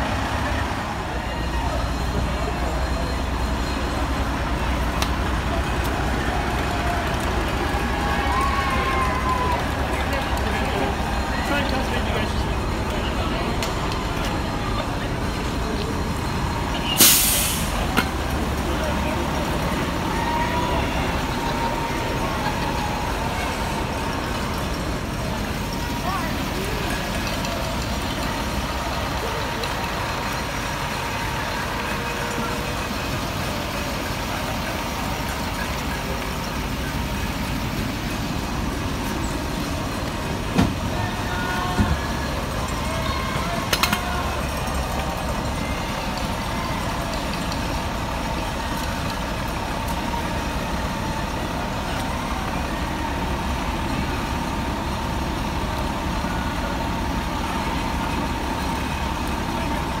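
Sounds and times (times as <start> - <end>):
diesel engine running: 0.0 - 60.0.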